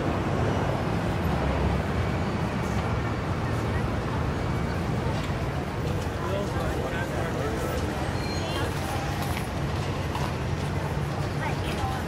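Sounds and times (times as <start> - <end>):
crowd talking: 0.0 - 12.0
traffic rumble: 0.0 - 12.0.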